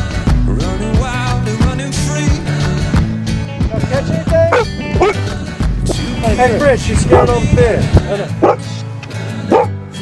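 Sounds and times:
background music: 0:00.0 - 0:10.0
dog whining: 0:04.5 - 0:05.2.

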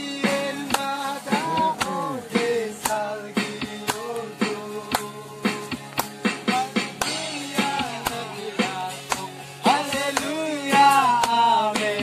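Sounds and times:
person singing: 0:00.0 - 0:05.8
acoustic guitar playing: 0:00.0 - 0:12.0
sharp even beat: 0:00.3 - 0:05.2.

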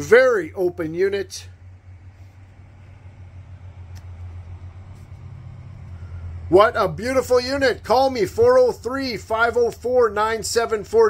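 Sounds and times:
low hum of running machine: 0:00.0 - 0:11.0
faint click: 0:03.9 - 0:04.2.

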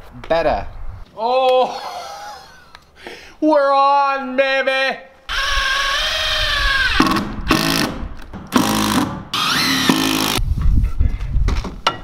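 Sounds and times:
cordless drill driving screws: 0:05.3 - 0:10.4.

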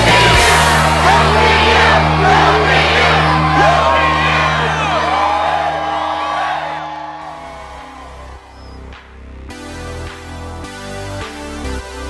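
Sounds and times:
crowd cheering and whooping: 0:00.0 - 0:08.9
music with low held tones: 0:00.0 - 0:12.0.

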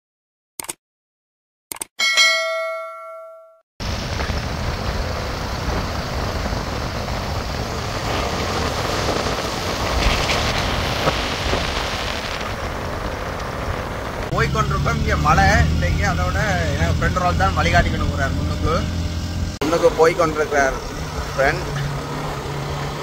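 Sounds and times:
bell-like notification chime: 0:02.0 - 0:03.6
wind and road noise from vehicle: 0:03.8 - 0:23.0.

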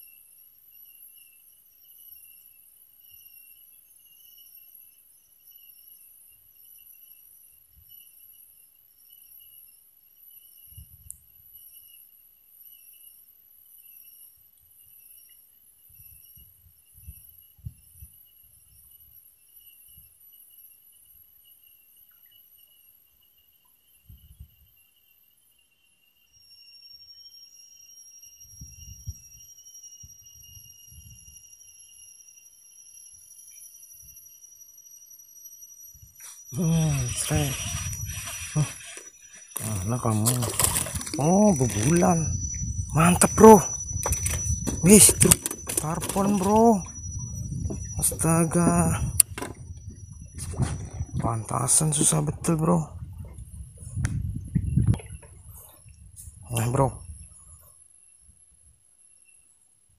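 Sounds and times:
insects trilling: 0:00.0 - 0:59.9
steady high tone: 0:36.5 - 0:53.0.

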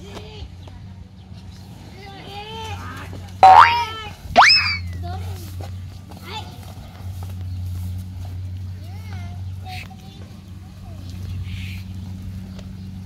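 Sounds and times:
person shouting calls: 0:04.4 - 0:04.9.

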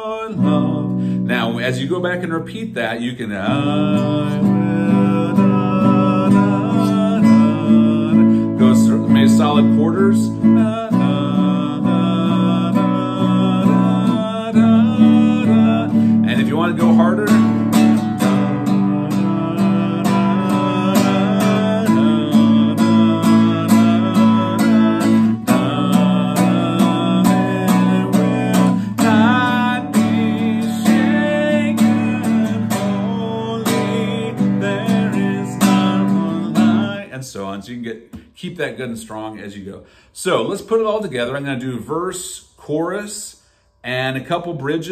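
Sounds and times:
man singing softly: 0:00.0 - 0:37.8
classical guitar strumming: 0:00.2 - 0:37.1.

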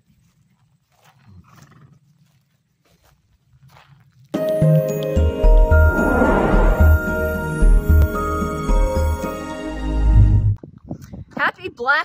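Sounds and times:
hoofsteps on grass: 0:00.0 - 0:04.6
horse snorting: 0:05.8 - 0:07.2.

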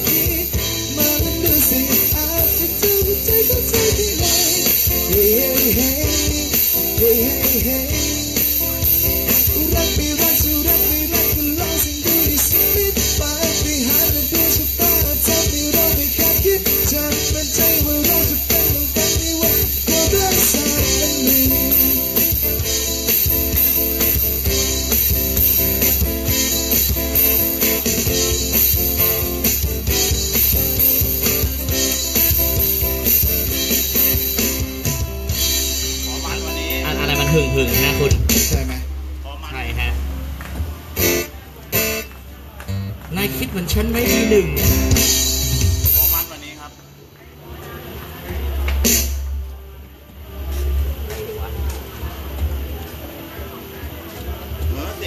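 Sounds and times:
drum kit beat: 0:00.0 - 0:39.2, 0:40.3 - 0:47.1, 0:48.0 - 0:55.0
guitars strummed: 0:00.0 - 0:47.0
live band deep bass rumble: 0:00.0 - 0:55.0.

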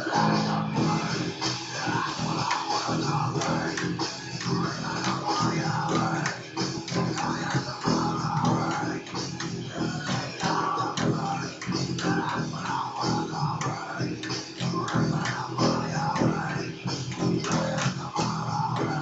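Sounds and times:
electric bass rock riff: 0:00.0 - 0:19.0.

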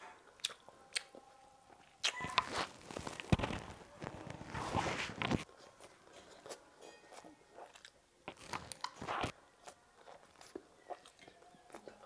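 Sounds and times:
crunchy chewing: 0:00.3 - 0:12.0.

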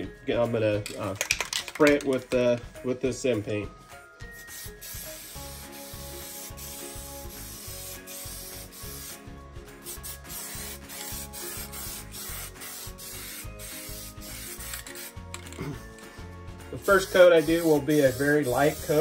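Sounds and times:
background music with beat: 0:00.0 - 0:19.0
aerosol spray can hissing: 0:04.4 - 0:15.6, 0:16.8 - 0:19.0.

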